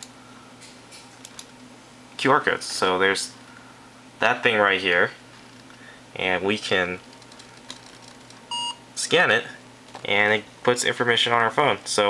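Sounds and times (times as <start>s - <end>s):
short phone beep: 8.5s - 8.8s.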